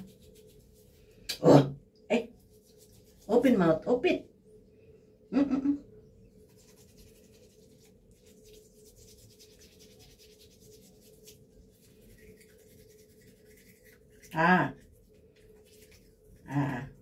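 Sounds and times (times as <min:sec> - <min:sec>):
toothbrush scrubbing teeth: 0:00.0 - 0:01.0, 0:02.3 - 0:03.6, 0:06.4 - 0:17.0
faint hum: 0:00.0 - 0:17.0.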